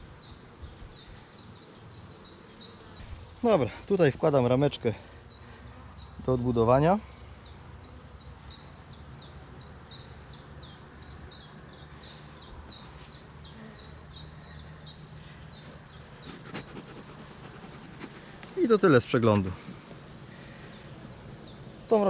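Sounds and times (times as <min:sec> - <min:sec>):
honeybees humming: 0:00.0 - 0:22.0.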